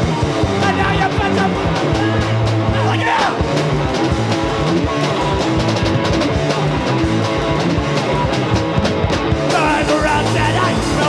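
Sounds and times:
fast drumbeat: 0.0s - 11.0s
punk band playing live: 0.0s - 11.0s
person singing: 9.5s - 11.0s.

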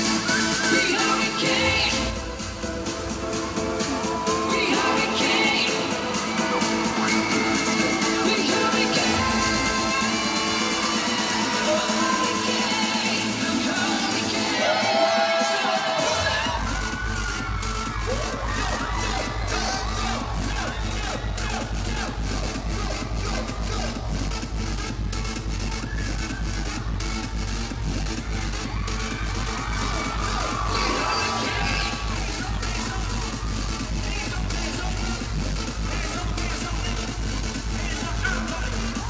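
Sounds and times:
crowd screaming: 0.0s - 24.4s, 25.5s - 39.0s
electronic dance music: 0.0s - 39.0s
heavy bass beat: 0.0s - 39.0s.

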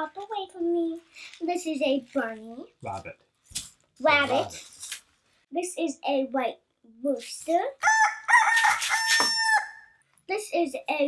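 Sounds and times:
rooster crowing: 7.8s - 10.0s.

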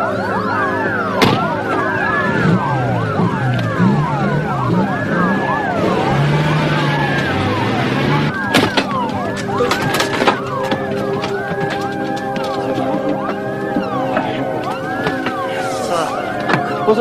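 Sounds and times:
car passing: 0.0s - 17.0s
emergency sirens wailing: 0.0s - 17.0s
vehicle engine running: 0.0s - 17.0s.

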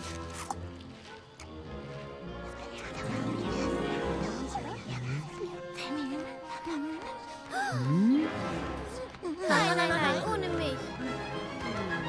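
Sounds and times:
film music with sustained notes: 0.0s - 12.0s.

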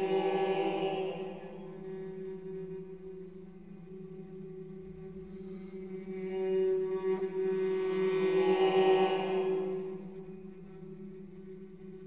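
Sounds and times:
viola: 0.0s - 12.0s.

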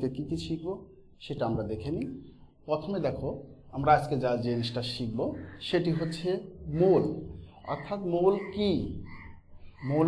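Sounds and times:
man speaking: 0.0s - 9.1s, 9.7s - 10.0s.

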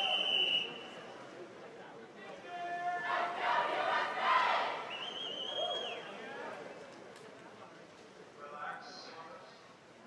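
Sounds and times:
high whistle: 0.0s - 1.0s, 4.9s - 6.1s
crowd yelling and cheering: 2.5s - 6.2s.

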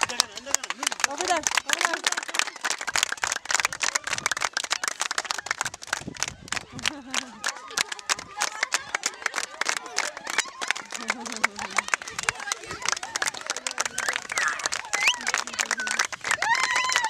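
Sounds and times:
children clapping: 0.0s - 17.0s
children calling out: 6.8s - 17.0s.

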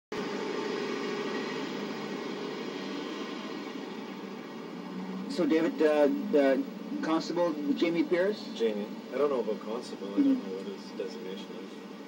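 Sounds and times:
faint hum: 0.2s - 12.0s.

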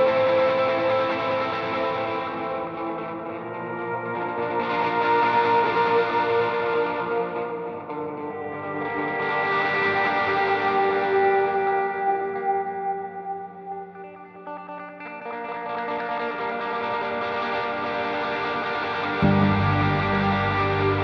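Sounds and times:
electric guitar playing chords: 0.0s - 21.0s.

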